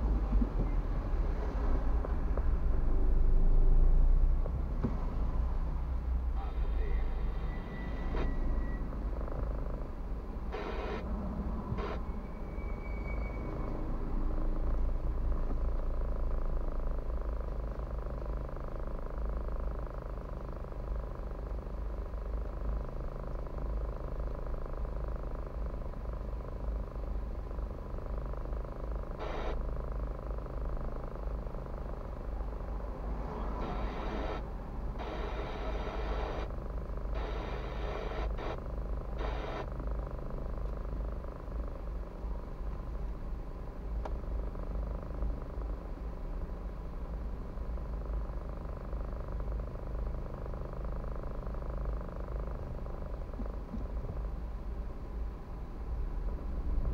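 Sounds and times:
car engine idling: 13.9 - 56.9.

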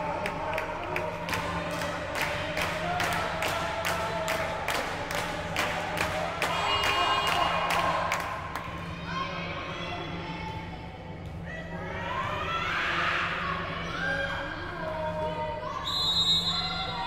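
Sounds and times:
spectators clapping rhythmically: 0.0 - 8.7
crowd cheering or chanting: 0.0 - 10.2.

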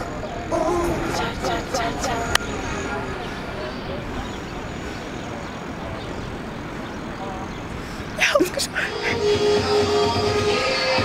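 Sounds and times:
outdoor rumble and hiss: 0.0 - 11.0.

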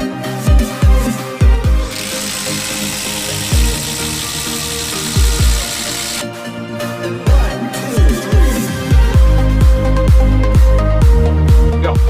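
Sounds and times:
electronic dance music: 1.9 - 6.2
impact driver driving into wood: 1.9 - 6.2.

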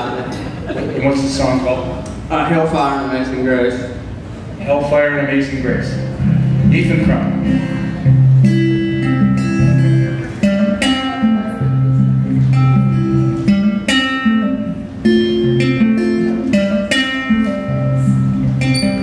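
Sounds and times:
acoustic guitar picking: 4.0 - 19.0.

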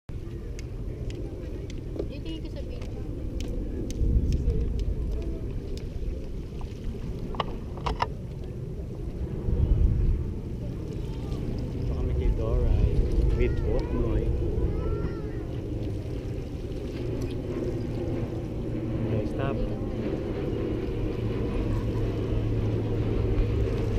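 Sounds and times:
wind buffeting microphone: 0.1 - 23.9.

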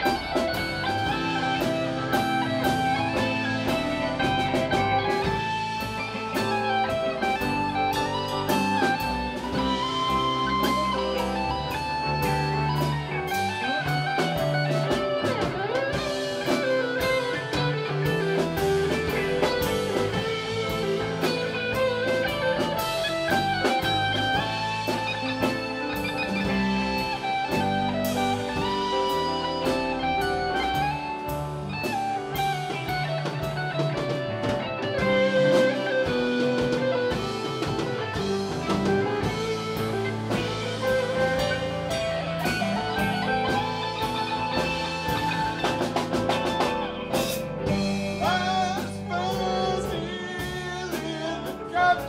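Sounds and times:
bass guitar: 0.0 - 52.0
drum kit: 0.0 - 52.0
keyboard chords: 0.0 - 52.0
lead guitar line: 0.0 - 52.0.

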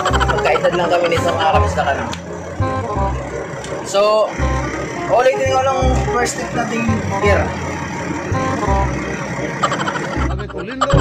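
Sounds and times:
music playing: 0.0 - 11.0
truck engine running: 0.0 - 11.0.

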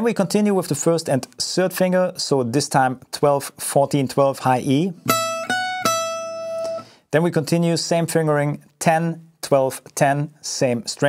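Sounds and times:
acoustic guitar picked notes: 5.0 - 7.0.

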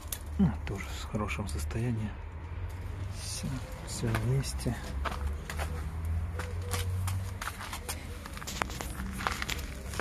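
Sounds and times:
footsteps on rough ground: 3.8 - 10.0.

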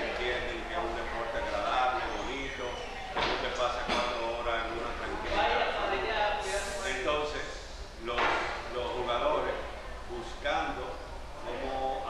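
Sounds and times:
man talking: 0.0 - 5.4, 6.8 - 12.0.

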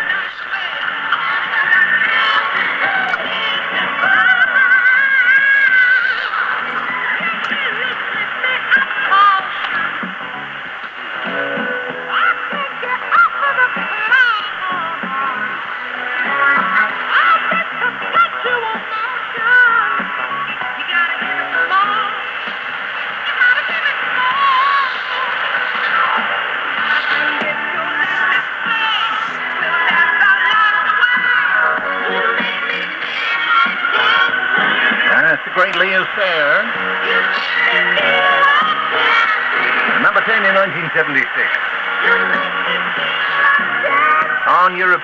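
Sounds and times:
muffled radio music: 0.0 - 45.0.

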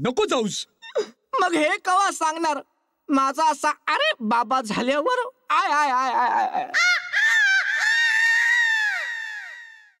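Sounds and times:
high-pitched cartoon cry: 6.2 - 10.0.

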